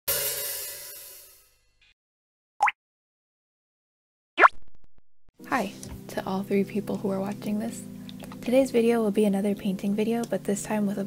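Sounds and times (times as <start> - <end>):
descending bloop sound effect: 4.4 - 4.7
soft background music: 5.4 - 11.0
woman speaking: 5.5 - 7.8, 8.4 - 11.0.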